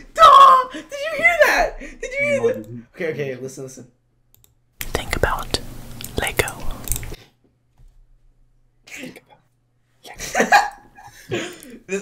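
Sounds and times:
person whispering: 0:04.8 - 0:07.0, 0:08.9 - 0:10.2
sharp clicks: 0:06.0 - 0:07.2.

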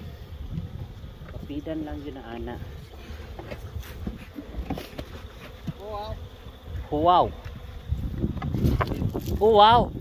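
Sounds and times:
honeybees buzzing: 0:00.0 - 0:10.0.

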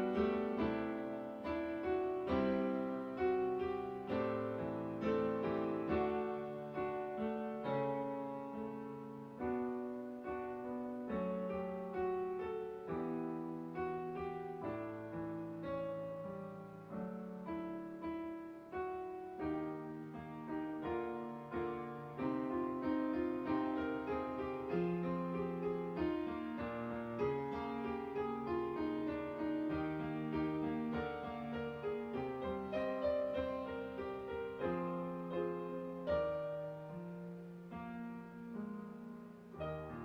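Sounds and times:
digital piano playing hymn chords: 0:00.0 - 0:40.0.

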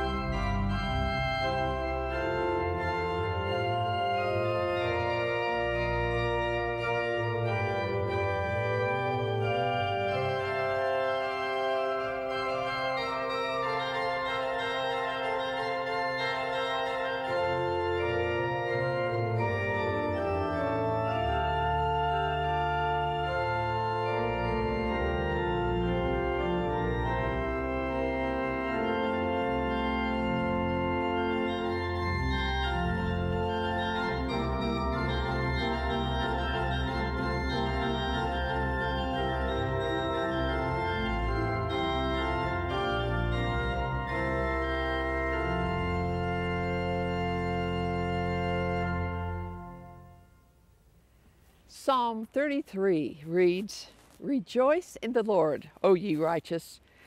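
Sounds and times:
pipe organ chords: 0:00.0 - 0:52.6.

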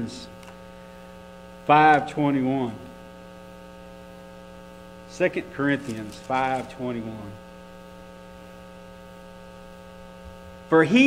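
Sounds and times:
electrical mains hum: 0:00.0 - 0:11.0.

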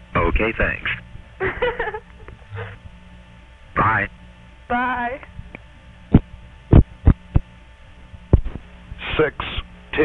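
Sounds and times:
telephone line hum: 0:00.0 - 0:10.0.

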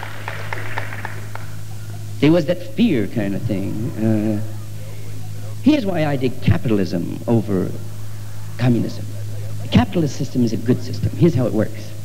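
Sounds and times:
scattered claps: 0:00.0 - 0:02.0
low recording hum: 0:00.0 - 0:12.0
audience laughter: 0:00.6 - 0:02.2, 0:07.9 - 0:11.1.

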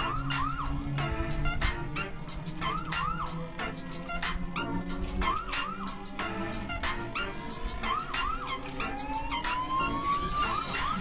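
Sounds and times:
hi-hat tick pattern: 0:00.0 - 0:08.6
rising siren-like tone: 0:00.0 - 0:11.0.

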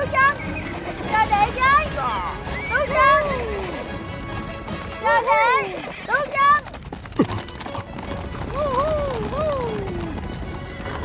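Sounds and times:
dramatic film score music: 0:00.0 - 0:05.2
galloping horses hoofbeats: 0:00.0 - 0:11.0.

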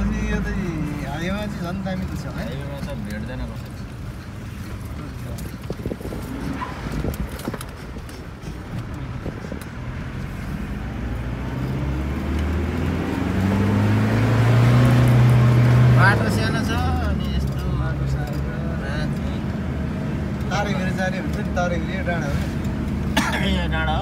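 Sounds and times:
people talking: 0:00.0 - 0:03.7, 0:16.0 - 0:19.5
vehicle engine revving: 0:05.7 - 0:24.0.

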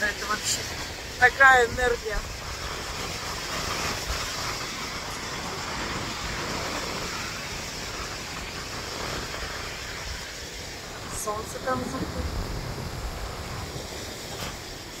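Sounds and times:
ocean surf breaking: 0:00.0 - 0:15.0
wind buffeting microphone: 0:00.0 - 0:15.0.

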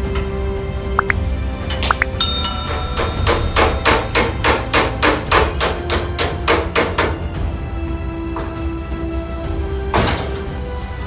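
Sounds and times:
hammer striking sheet steel: 0:02.2 - 0:07.2.

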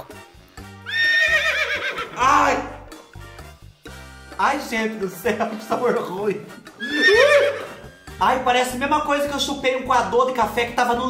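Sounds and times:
background music with bass line: 0:00.0 - 0:11.0
horse whinny: 0:00.8 - 0:02.7, 0:06.7 - 0:08.0.

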